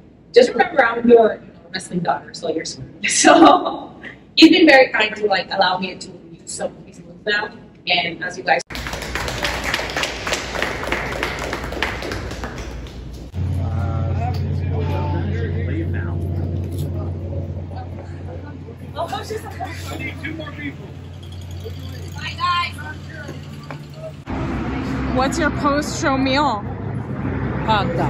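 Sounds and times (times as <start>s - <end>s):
people applauding: 8.7s - 13.4s, 19.9s - 24.3s
steady low hum: 8.7s - 28.0s.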